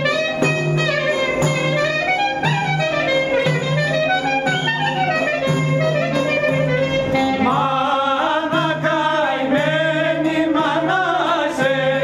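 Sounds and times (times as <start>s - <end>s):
clarinet folk melody: 0.0s - 7.8s.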